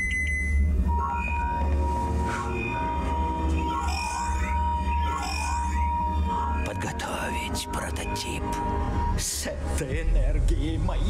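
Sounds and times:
steady electronic tone: 0.0s - 9.6s.

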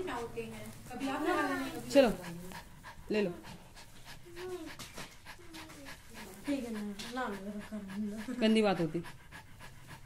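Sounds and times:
dog panting: 0.0s - 10.0s.

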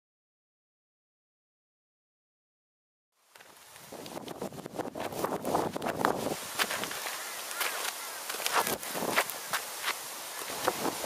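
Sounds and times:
small crackles and clicks: 3.3s - 4.4s, 5.8s - 10.8s
wind on microphone: 3.8s - 7.5s, 8.4s - 11.0s.

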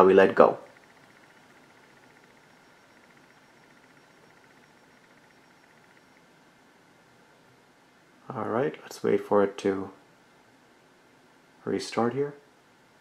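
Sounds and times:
fast high ticking: 0.0s - 6.3s.

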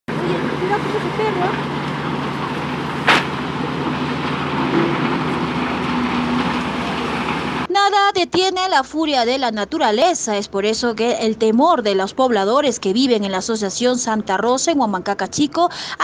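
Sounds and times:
low engine drone: 0.1s - 7.7s
river rushing: 0.2s - 7.7s
sharp knock: 3.0s - 3.4s.

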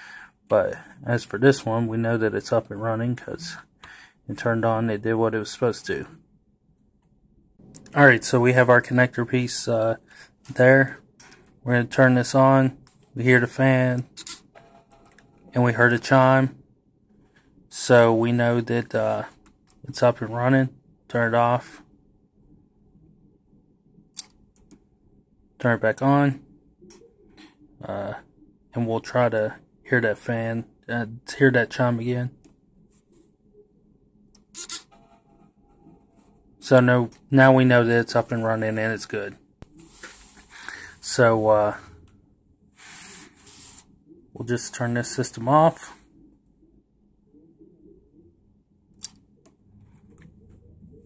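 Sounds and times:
cooling fan whirring faintly: 0.0s - 51.0s
faint room noise: 0.0s - 51.0s.

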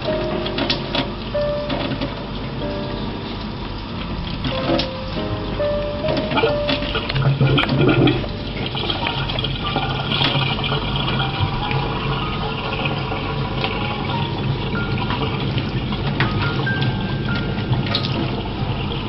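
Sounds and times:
background music: 0.0s - 19.0s
faucet running into metal sink: 6.1s - 19.0s.

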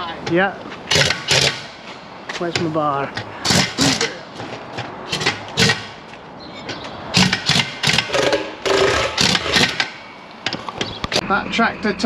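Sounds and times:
impact wrench bursts: 0.9s - 1.8s, 3.4s - 4.2s, 5.1s - 6.0s, 7.1s - 10.1s.

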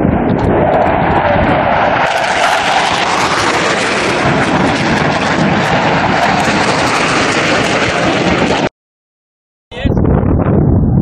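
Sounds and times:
jet engine roar: 0.0s - 8.7s.

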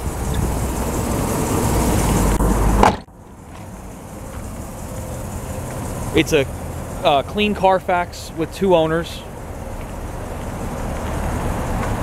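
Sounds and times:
engine idling rumble: 0.0s - 12.0s.

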